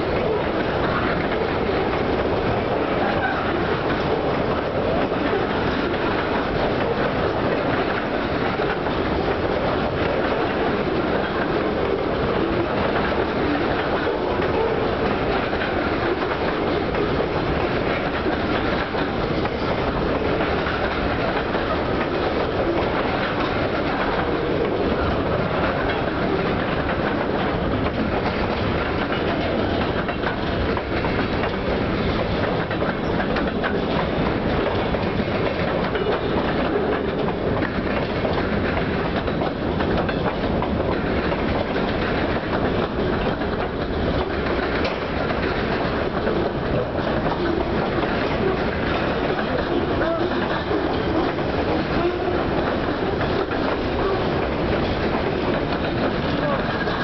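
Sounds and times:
freight car wheels on rails: 0.0s - 57.0s.

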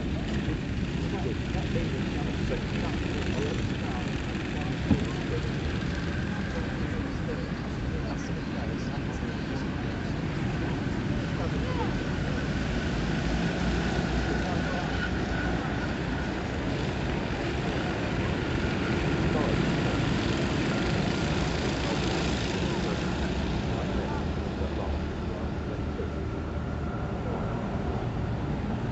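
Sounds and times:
go-kart engines buzzing: 0.0s - 28.9s.

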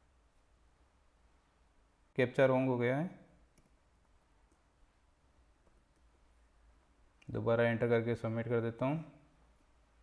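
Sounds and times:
man speaking: 2.2s - 3.3s, 7.3s - 9.2s.

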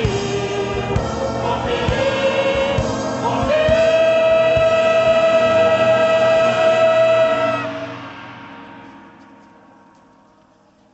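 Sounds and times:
choir and brass band chord: 0.0s - 8.2s
hall echo: 0.0s - 10.2s.

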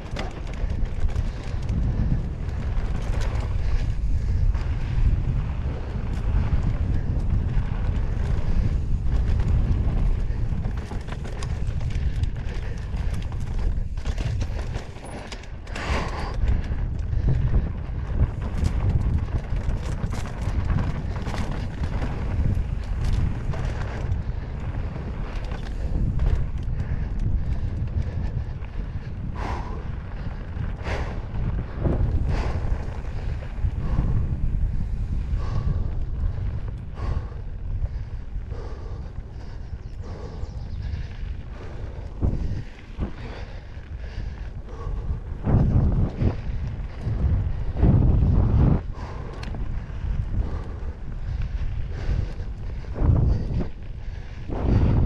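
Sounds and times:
bike clicks and rattles: 0.0s - 55.0s
bike tyres rolling over dirt: 0.0s - 55.0s
wind buffeting microphone: 0.0s - 55.0s.

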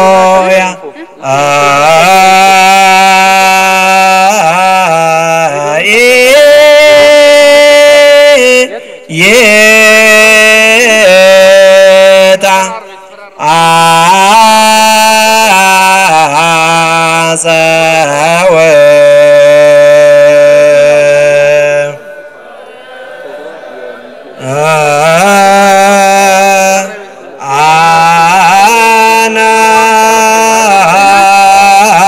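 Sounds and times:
person chanting a hymn: 0.0s - 32.0s.

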